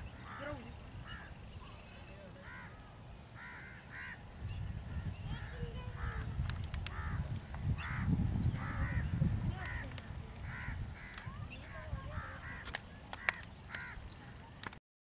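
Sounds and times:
low wind rumble: 0:02.5 - 0:13.0
bird cawing harshly: 0:03.4 - 0:04.2, 0:10.5 - 0:11.2.

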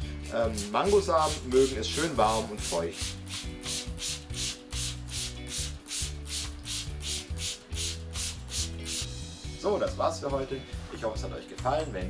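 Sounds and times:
spray bottle hissing bursts: 0:00.4 - 0:09.1.

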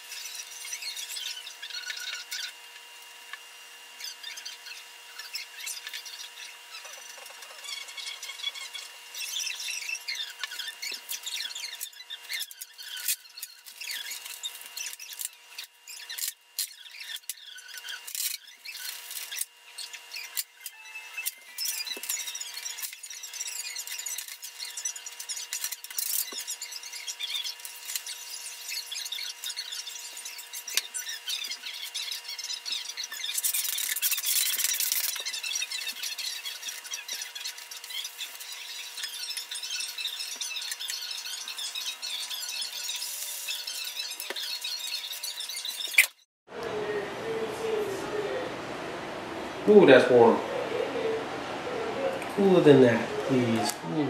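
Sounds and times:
iron rubbing on plastic film: 0:21.3 - 0:46.3.

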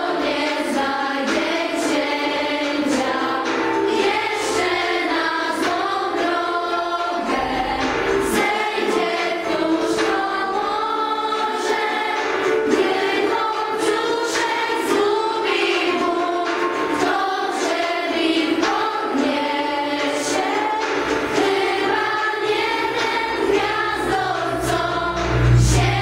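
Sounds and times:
group of voices singing: 0:00.0 - 0:26.0.

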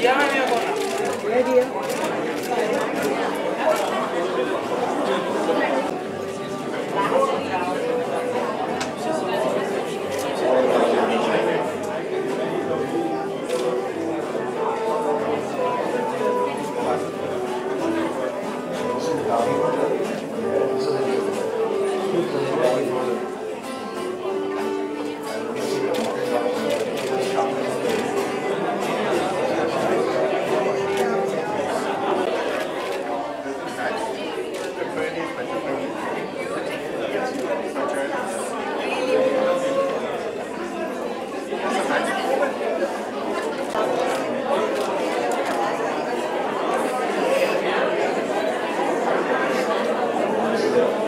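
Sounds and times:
crowd talking: 0:00.0 - 0:51.0
background music: 0:04.4 - 0:32.3.

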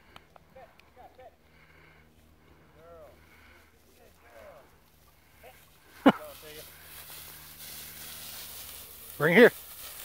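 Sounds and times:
footsteps through dry grass: 0:02.1 - 0:10.0.

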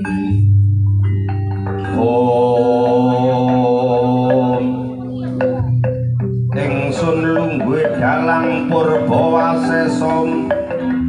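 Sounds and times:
deep ringing tone: 0:00.0 - 0:11.0
gamelan playing: 0:00.0 - 0:11.0
wavering held pitched line: 0:01.1 - 0:11.0.

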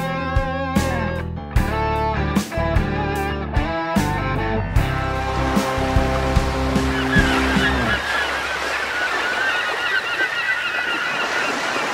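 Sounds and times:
guitar music: 0:00.0 - 0:08.0
water noise: 0:04.8 - 0:11.9
flock of birds calling: 0:06.5 - 0:11.9.

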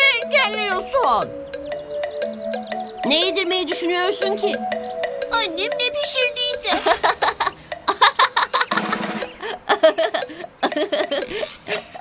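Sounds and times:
light background music: 0:00.0 - 0:12.0
boy laughing: 0:06.6 - 0:12.0.

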